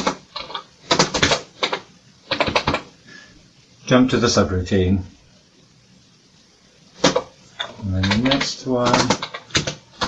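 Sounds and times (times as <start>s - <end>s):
keyboard typing: 0.0s - 2.9s, 7.0s - 10.0s.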